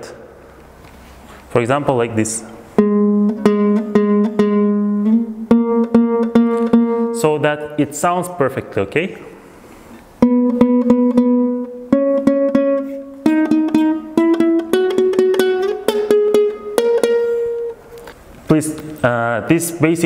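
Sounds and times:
lute strumming and fretted notes: 0:02.7 - 0:07.8, 0:10.2 - 0:18.2.

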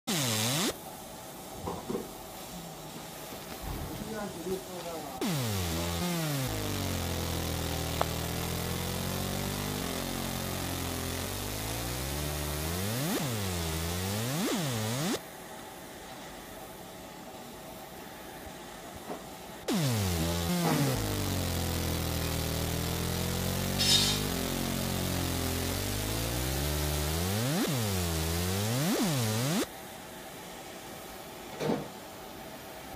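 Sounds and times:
laser machine buzzing: 0:00.1 - 0:00.8, 0:05.2 - 0:15.2, 0:19.7 - 0:29.7
short hiss: 0:23.7 - 0:24.4.

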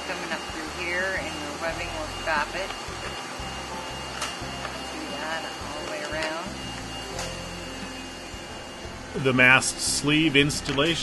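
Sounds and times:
vacuum hum: 0:00.0 - 0:11.0.

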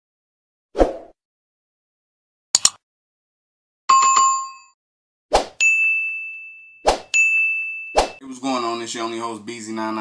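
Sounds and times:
long high ding: 0:05.6 - 0:08.9
notification bell ding: 0:05.6 - 0:09.3.

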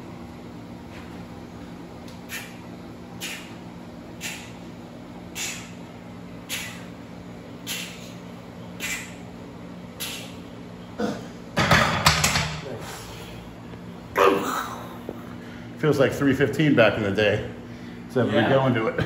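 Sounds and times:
sharp breaths: 0:02.2 - 0:03.6, 0:04.2 - 0:04.6, 0:05.3 - 0:05.8, 0:06.4 - 0:07.0, 0:07.6 - 0:08.2, 0:08.8 - 0:09.2, 0:10.0 - 0:10.5
person straining and grunting: 0:10.9 - 0:11.4, 0:14.2 - 0:15.0.

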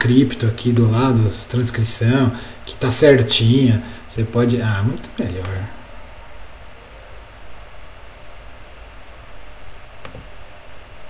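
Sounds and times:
microphone hiss and hum: 0:00.0 - 0:11.0.

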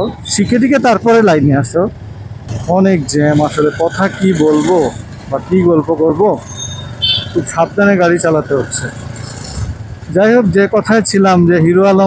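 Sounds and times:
man talking: 0:00.0 - 0:02.0, 0:02.6 - 0:06.5, 0:07.2 - 0:09.0, 0:10.1 - 0:12.0
motorcycle engine: 0:00.0 - 0:12.0
street traffic: 0:00.0 - 0:12.0.

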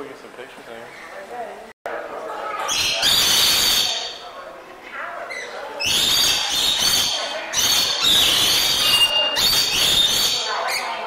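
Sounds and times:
lorikeets screeching and chattering: 0:02.6 - 0:04.3, 0:05.2 - 0:11.0.

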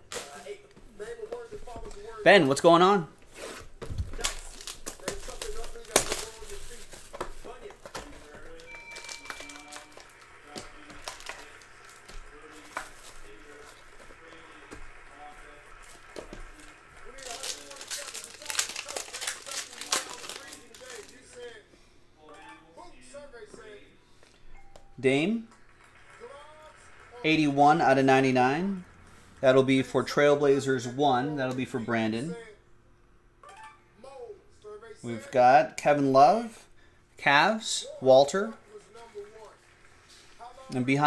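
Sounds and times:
plastic wrap crinkling: 0:03.3 - 0:21.5.

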